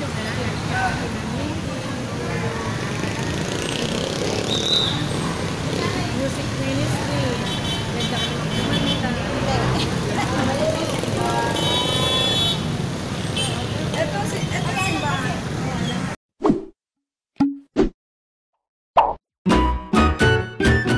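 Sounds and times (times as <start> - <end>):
people's voices: 0.0 - 12.7, 13.3 - 16.2
traffic engines din: 0.0 - 16.2
vehicle horns: 7.3 - 10.0, 11.2 - 13.9.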